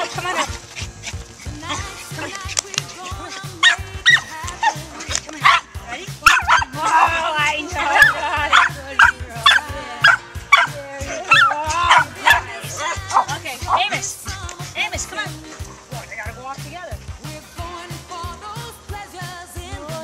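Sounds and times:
small dogs yipping and barking: 0:00.0 - 0:16.1
background music: 0:00.0 - 0:20.0.

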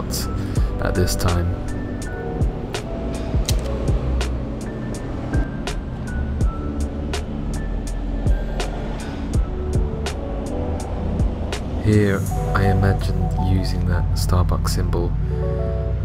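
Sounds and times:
percussive music over held chords: 0:00.6 - 0:04.7, 0:05.4 - 0:13.2.

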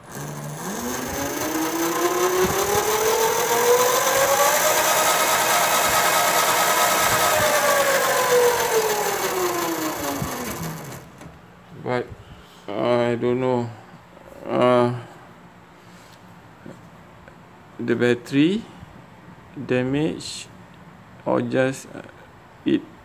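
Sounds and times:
electric motor whine: 0:00.0 - 0:11.3.

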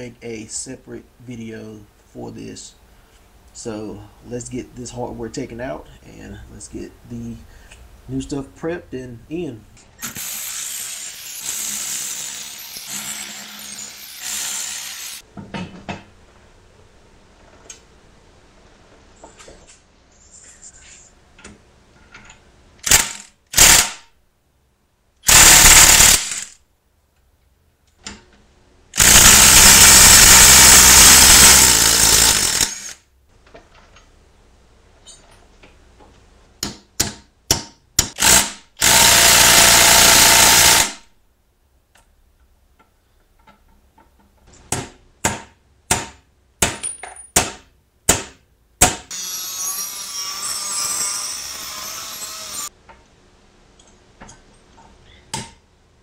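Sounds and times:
impact wrench hammering: 0:44.7 - 0:49.2.

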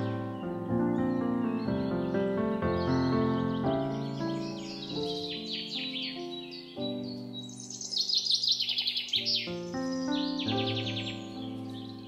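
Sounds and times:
birdsong chirps and trills: 0:00.0 - 0:12.0
music of sustained chords: 0:00.0 - 0:12.0.

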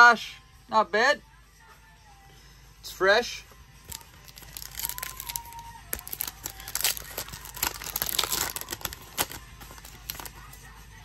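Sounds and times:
foil wrapper tearing and crinkling: 0:03.9 - 0:10.6.

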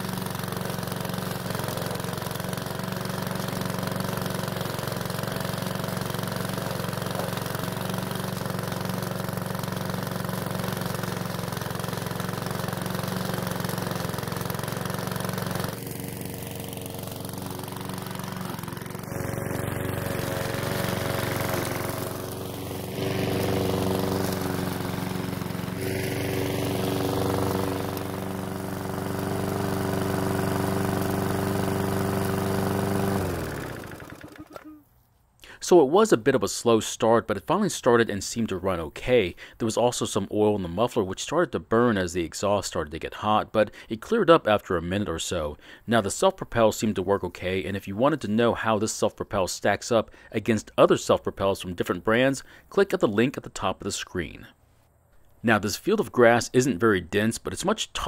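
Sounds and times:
lawn mower engine running: 0:00.0 - 0:34.9.

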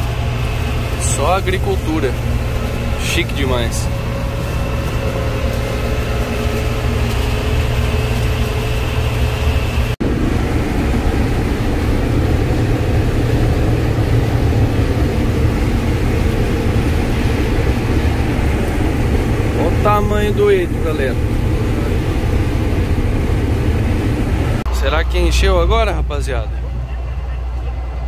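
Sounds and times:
combine harvester engine drone: 0:00.0 - 0:28.0.

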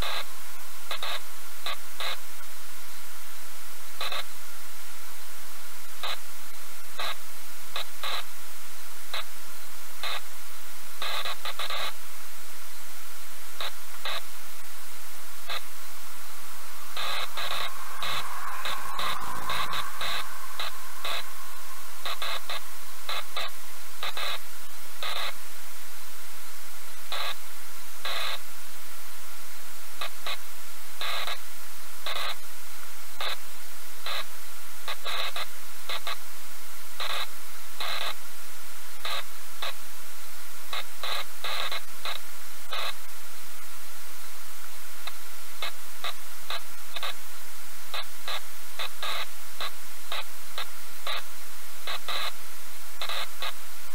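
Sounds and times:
static hiss with crackles: 0:00.0 - 0:53.9.

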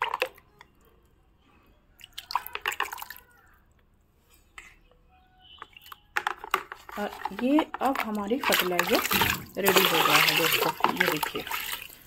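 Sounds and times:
water splashing in plastic bucket: 0:00.0 - 0:00.4, 0:02.0 - 0:03.3, 0:05.6 - 0:12.0.

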